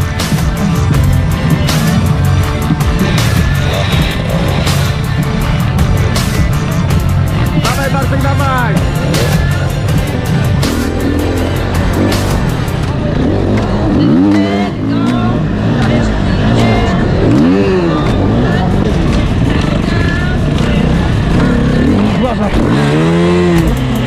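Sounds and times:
motorcycle engine revving: 0:00.0 - 0:24.0.

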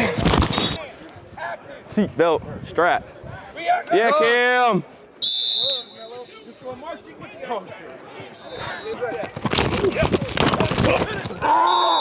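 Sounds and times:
sports whistle blast: 0:05.2 - 0:06.5, 0:11.6 - 0:12.0
footsteps and pad contact: 0:08.2 - 0:11.5.

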